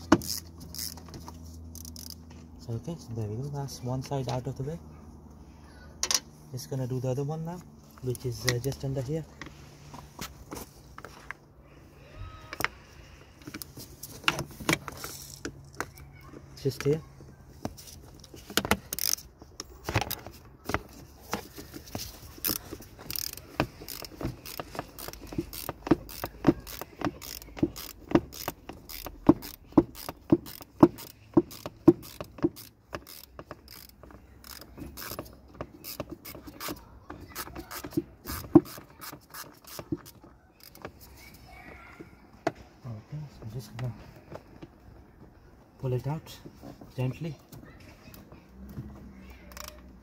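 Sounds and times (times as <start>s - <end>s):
ratchet wrench clicking: 0.0s - 2.2s, 18.6s - 19.3s, 21.9s - 41.1s, 49.5s - 49.9s.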